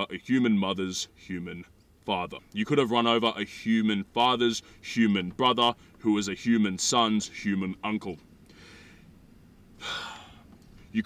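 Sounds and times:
man speaking: 0.0s - 8.2s
man breathing in sharply: 8.5s - 9.2s, 9.8s - 10.5s.

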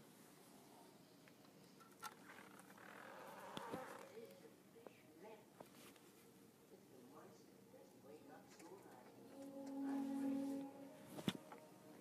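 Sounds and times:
soft buzz: 8.6s - 12.0s.

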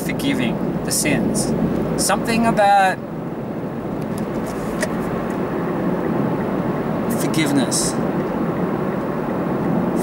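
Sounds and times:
car road and engine noise: 0.0s - 10.0s.

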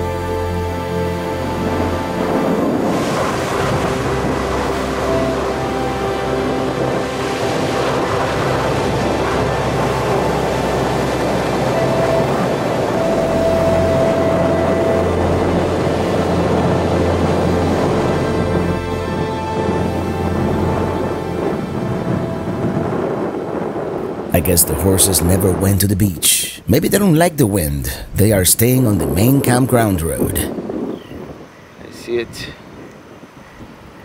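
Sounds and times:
background music with held notes: 0.0s - 25.9s
ocean surf: 0.0s - 34.0s
wind on microphone: 0.0s - 34.0s.

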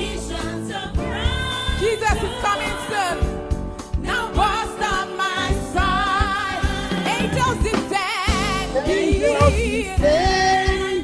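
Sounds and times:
band playing: 0.3s - 11.0s
person singing with vibrato: 4.3s - 11.0s.

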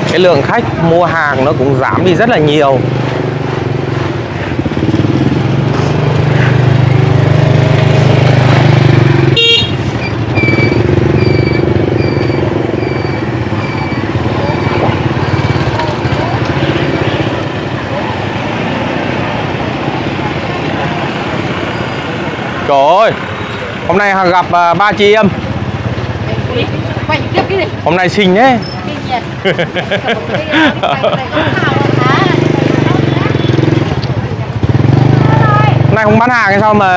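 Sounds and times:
motorbike engine running: 3.2s - 18.4s, 31.3s - 36.8s
horn toot: 9.3s - 11.7s
high electronic beeps: 10.0s - 17.0s.

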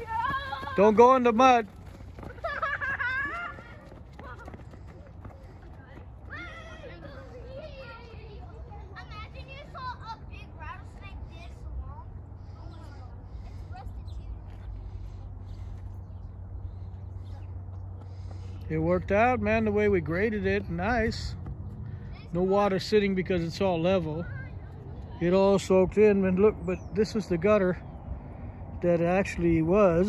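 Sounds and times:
children shouting: 0.0s - 1.0s, 6.2s - 8.4s.

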